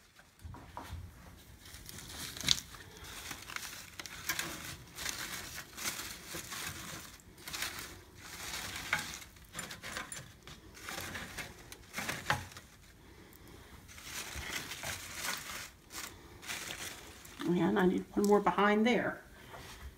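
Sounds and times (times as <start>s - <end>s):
artificial flowers rustling: 0.0s - 19.9s.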